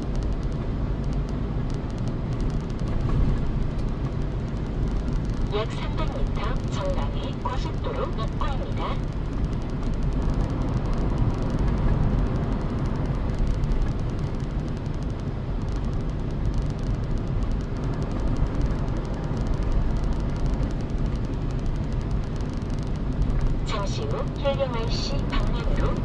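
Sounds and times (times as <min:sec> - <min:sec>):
car tyres and engine rumble: 0:00.0 - 0:26.0.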